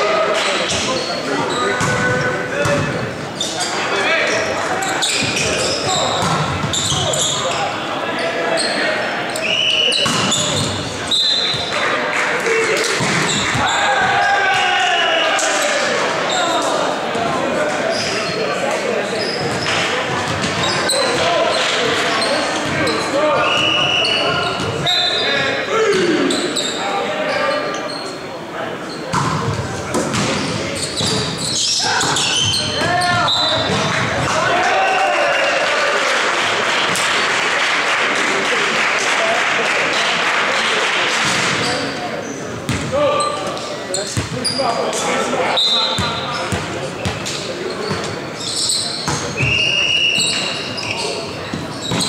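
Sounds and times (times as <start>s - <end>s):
players shouting: 3.6s - 18.2s, 31.5s - 36.5s.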